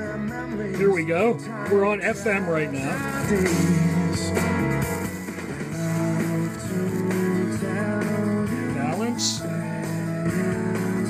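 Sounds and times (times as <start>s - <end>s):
radio music from loudspeakers: 0.0s - 10.7s.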